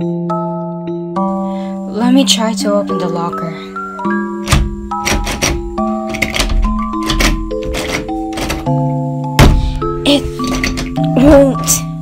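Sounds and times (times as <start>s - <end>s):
soft melodic background music: 0.0s - 12.0s
locker door knocking and rattling: 4.4s - 8.7s, 9.4s - 9.8s.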